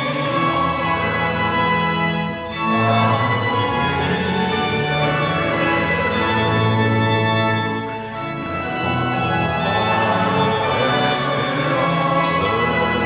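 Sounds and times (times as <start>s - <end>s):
pipe organ playing a hymn: 0.0s - 13.0s.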